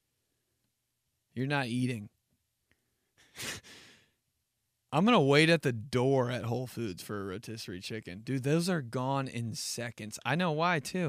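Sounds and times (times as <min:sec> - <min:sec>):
man's breathy laugh: 0:03.2 - 0:04.0.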